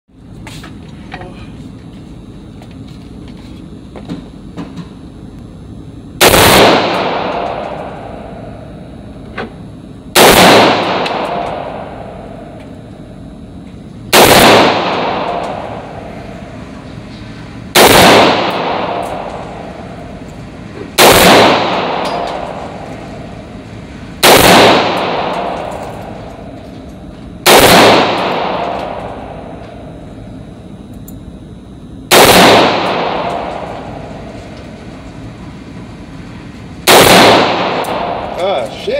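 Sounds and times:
rifle shots with long echo: 0:06.2 - 0:09.2, 0:10.1 - 0:13.1, 0:14.1 - 0:16.9, 0:17.5 - 0:26.8, 0:27.4 - 0:30.4, 0:32.1 - 0:38.6.

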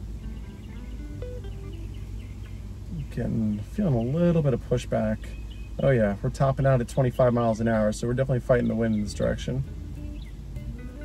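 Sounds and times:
quiet background music: 0:00.0 - 0:04.2, 0:06.8 - 0:11.0
steady low hum: 0:00.0 - 0:11.0.

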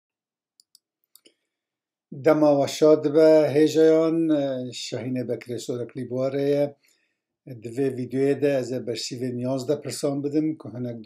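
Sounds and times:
faint clicks: 0:00.6 - 0:01.4.

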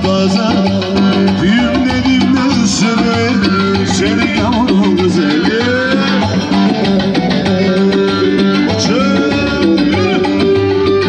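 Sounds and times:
folk dance tune on electronic keyboard: 0:00.0 - 0:11.0
programmed rhythm: 0:00.0 - 0:11.0
string instrument: 0:00.0 - 0:11.0.

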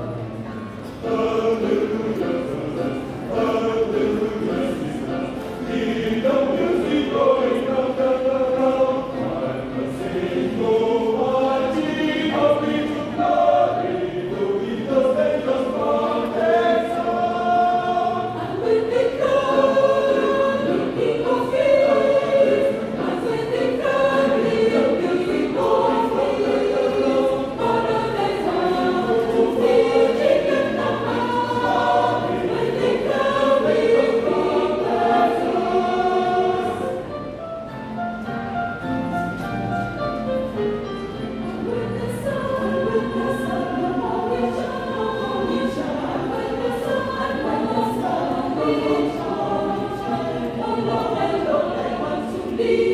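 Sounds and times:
choir singing gospel: 0:00.0 - 0:37.4, 0:40.6 - 0:52.9.

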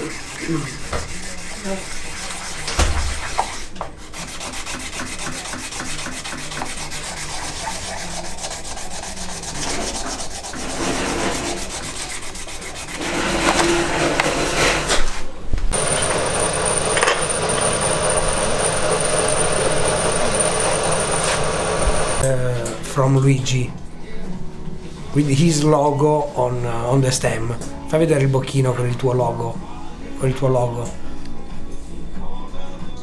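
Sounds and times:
file scraping pipe stem: 0:00.0 - 0:15.0
machine with high whine: 0:15.8 - 0:22.2.

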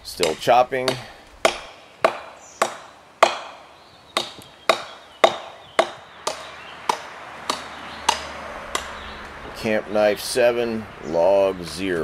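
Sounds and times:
knife chopping into wood: 0:00.2 - 0:09.0.

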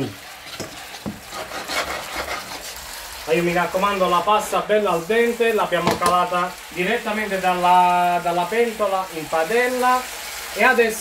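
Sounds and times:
pasta sizzling in a frying pan: 0:00.0 - 0:11.0
tongs scraping a pan: 0:00.3 - 0:02.9.

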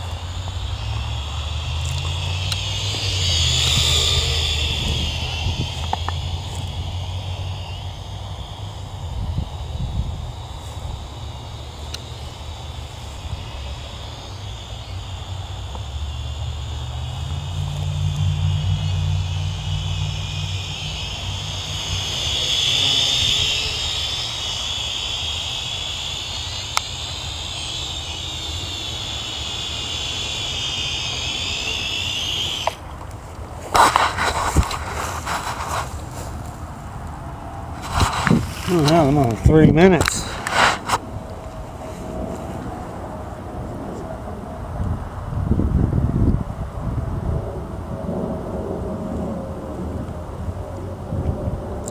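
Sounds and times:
wind on microphone: 0:00.0 - 0:36.7, 0:37.4 - 0:51.9
drone motors whining: 0:00.0 - 0:44.4.

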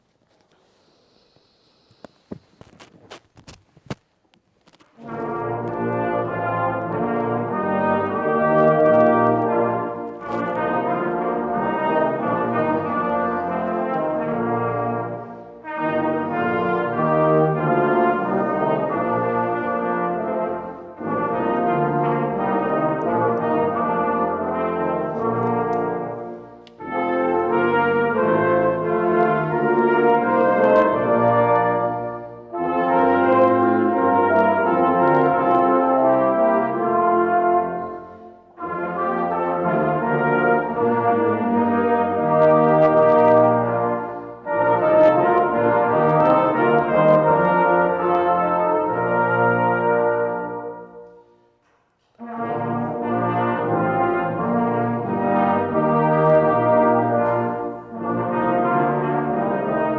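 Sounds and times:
brass ensemble playing a hymn: 0:04.7 - 0:59.9.

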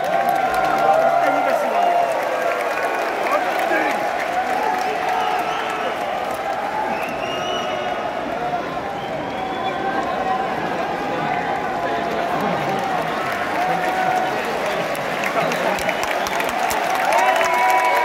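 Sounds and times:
stadium crowd cheering and clapping: 0:00.0 - 0:18.0.

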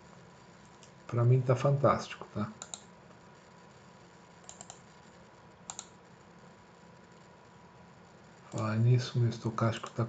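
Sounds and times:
computer keys clicking: 0:02.6 - 0:02.9, 0:04.4 - 0:04.9, 0:05.6 - 0:06.0.

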